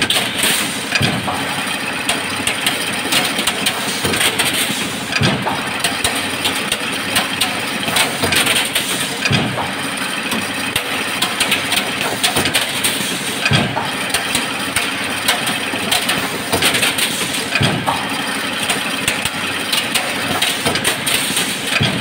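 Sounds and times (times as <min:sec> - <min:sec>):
metallic clatter of machine: 0:00.0 - 0:22.0.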